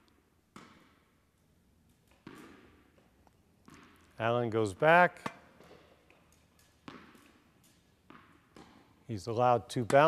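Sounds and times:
tennis ball bouncing: 0:00.1 - 0:01.2, 0:01.9 - 0:09.1, 0:09.8 - 0:10.0
racket hitting tennis ball: 0:00.5 - 0:01.2, 0:01.9 - 0:09.1, 0:09.8 - 0:10.0.

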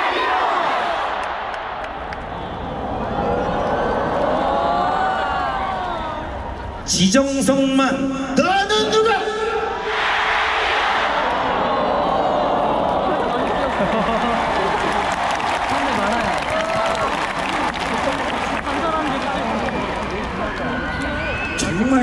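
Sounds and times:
stadium crowd cheering: 0:00.0 - 0:07.0, 0:08.4 - 0:22.0.

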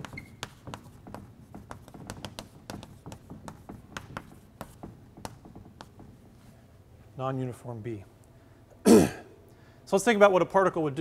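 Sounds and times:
chalk squeak: 0:00.0 - 0:03.4
chalk tapping and scratching on blackboard: 0:00.0 - 0:06.8.

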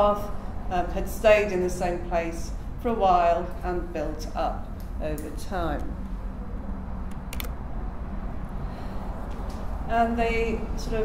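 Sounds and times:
low room noise rumble: 0:00.0 - 0:11.0.

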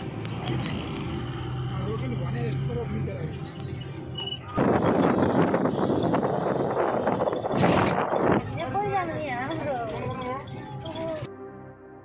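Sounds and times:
bus engine droning: 0:00.0 - 0:11.3
passengers talking: 0:01.7 - 0:11.3.

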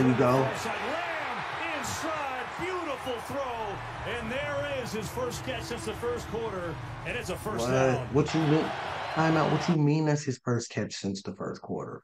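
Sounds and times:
broadcast background noise: 0:00.0 - 0:09.8
man talking: 0:00.0 - 0:12.0.

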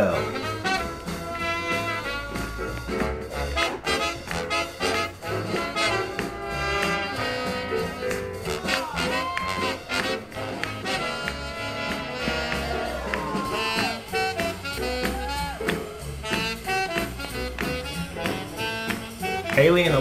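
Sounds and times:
swing big band playing: 0:00.0 - 0:20.0.

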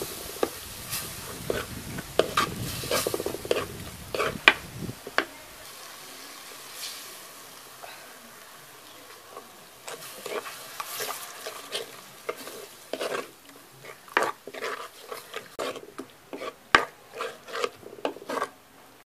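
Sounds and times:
ladle scraping clay pot: 0:00.0 - 0:05.3, 0:09.3 - 0:18.6.

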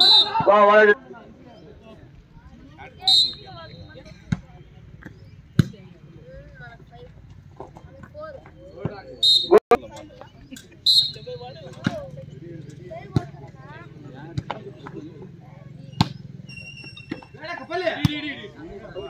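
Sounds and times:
short shrill whistles: 0:00.0 - 0:00.4, 0:03.0 - 0:03.8, 0:09.2 - 0:09.6, 0:10.8 - 0:11.4
crowd chatter: 0:00.0 - 0:19.0.

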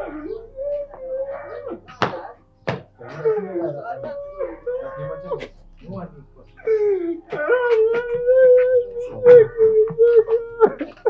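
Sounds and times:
woman wailing: 0:06.6 - 0:11.0.

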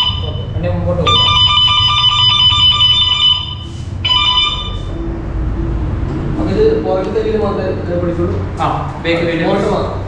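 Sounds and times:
scooter alarm electronic tone: 0:00.0 - 0:05.0.

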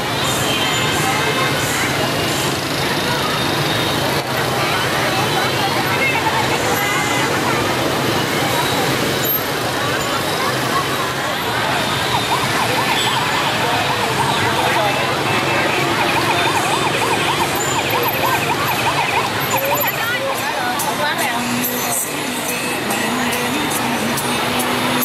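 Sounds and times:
crowd chatter: 0:00.0 - 0:25.0
street noise: 0:00.0 - 0:25.0
toy electronic siren warbling: 0:15.8 - 0:20.1.

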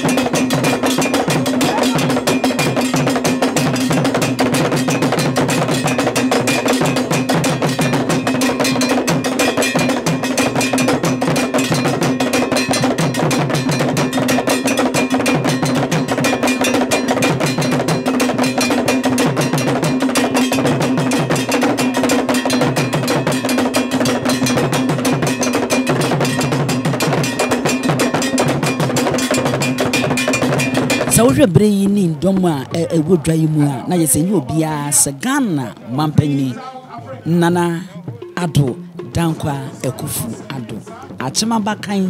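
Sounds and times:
hand drums: 0:00.0 - 0:36.6, 0:37.2 - 0:42.0
iron bell struck in rhythm: 0:00.0 - 0:36.6.

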